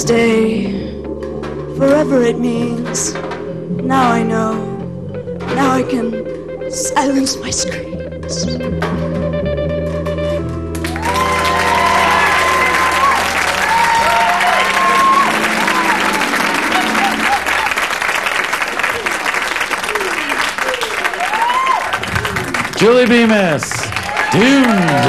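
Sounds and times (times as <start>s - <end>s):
guitar and bass notes: 0.0s - 17.8s
audience applauding and cheering: 10.4s - 25.0s.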